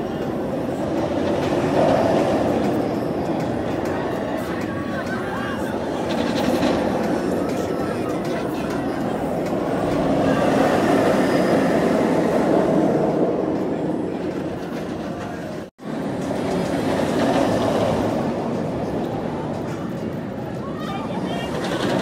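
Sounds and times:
roller coaster rumbling on track: 0.0 - 22.0.

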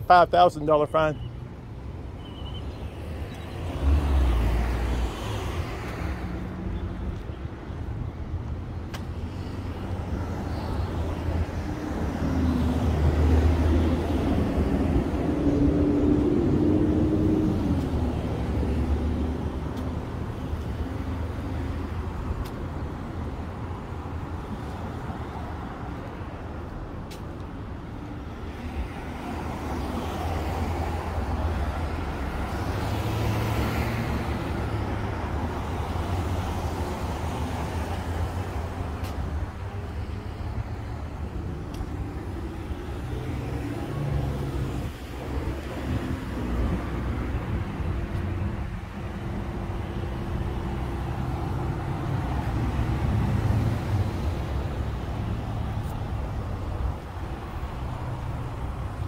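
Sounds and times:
cars passing: 0.0 - 59.0
low traffic rumble: 0.0 - 59.0.

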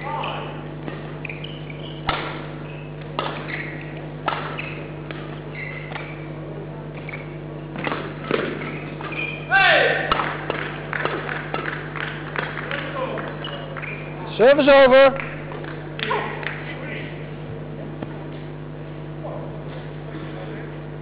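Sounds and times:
racket hitting shuttlecock: 0.2 - 6.3, 6.9 - 9.3, 9.9 - 12.9
shoes squeaking on floor: 0.2 - 6.4, 7.0 - 9.5, 13.4 - 14.3.

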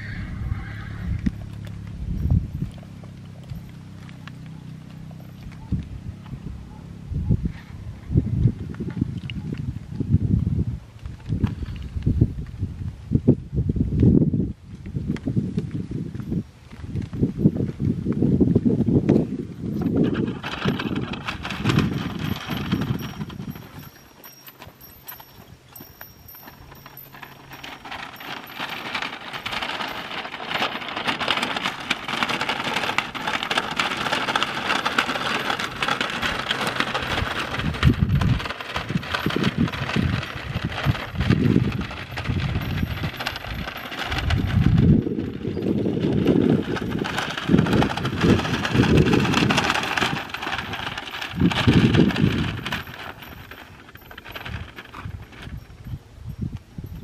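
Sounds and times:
plastic cart rattling over dirt: 0.0 - 6.8, 8.2 - 13.1, 14.7 - 57.0
low rumbling: 0.0 - 14.6, 24.8 - 57.0.

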